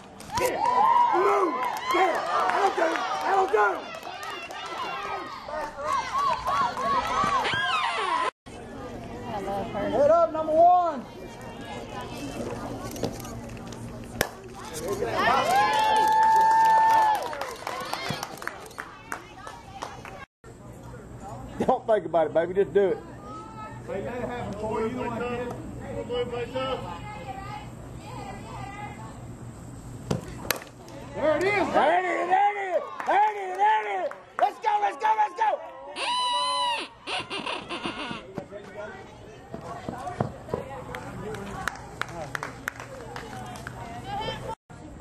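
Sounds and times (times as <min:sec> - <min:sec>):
spectators cheering: 0:00.0 - 0:08.3, 0:15.0 - 0:19.2
long high shout: 0:34.6 - 0:37.6.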